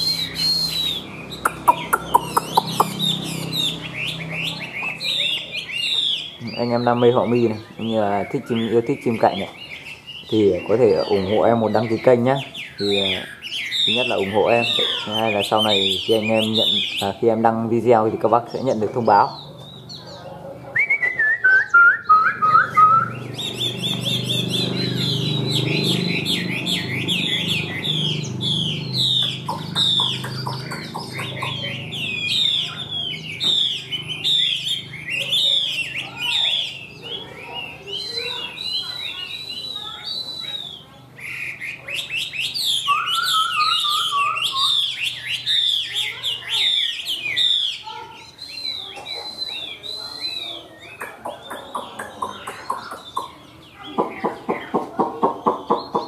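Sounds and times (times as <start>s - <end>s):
bird singing whistled phrases: 0.0s - 17.2s, 20.7s - 54.4s.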